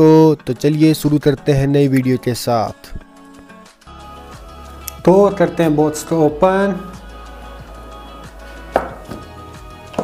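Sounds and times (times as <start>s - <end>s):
background music: 0.0s - 10.0s
cardboard box knocks: 8.8s - 9.3s.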